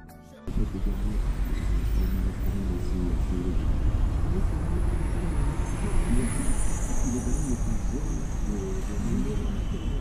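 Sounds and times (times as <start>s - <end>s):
bus and cars passing: 0.5s - 10.0s
indistinct voices: 0.5s - 10.0s
low engine rumble: 0.5s - 10.0s.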